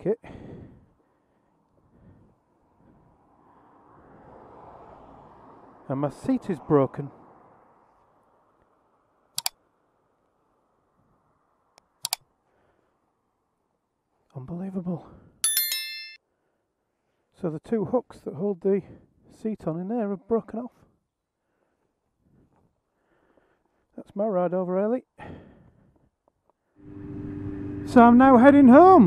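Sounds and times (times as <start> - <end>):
motorhome approaching on road: 1.5 - 11.7, 26.8 - 29.0
bright high notification chime: 15.4 - 16.2.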